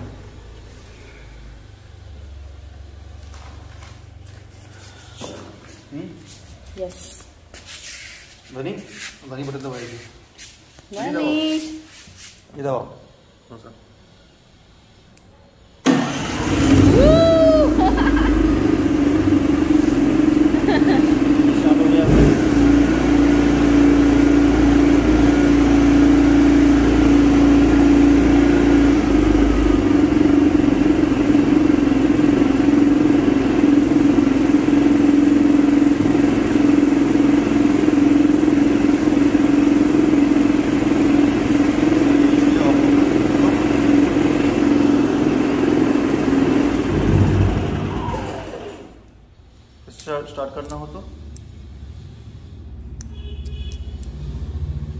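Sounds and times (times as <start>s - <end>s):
generator humming: 15.8s - 49.2s.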